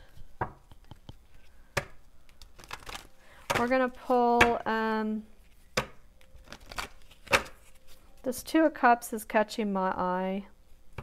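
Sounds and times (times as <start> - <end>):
cards rubbing: 6.4 - 8.0.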